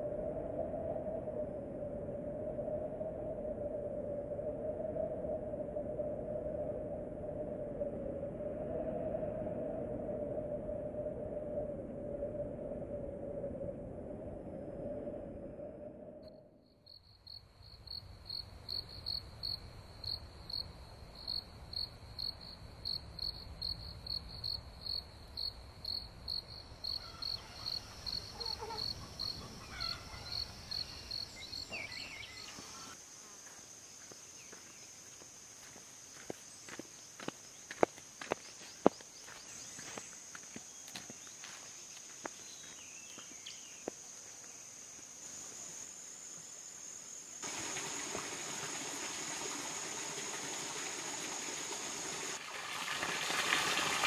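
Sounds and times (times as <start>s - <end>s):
higher insect call: 15.8s - 54.0s
insects chirping: 15.9s - 54.0s
faint wavering calls: 27.0s - 33.0s.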